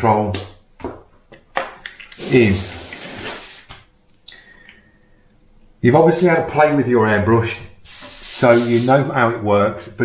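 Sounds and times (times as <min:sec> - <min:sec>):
airbrush air hiss: 0:02.2 - 0:03.7, 0:07.8 - 0:09.0.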